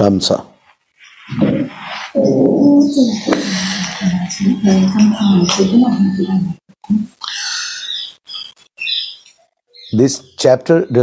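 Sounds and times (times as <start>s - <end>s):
bird chirping: 1.0s - 11.0s.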